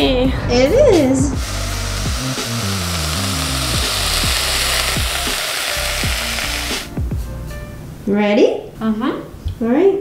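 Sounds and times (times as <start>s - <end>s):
broccoli sizzling in frying pan: 1.4s - 6.9s.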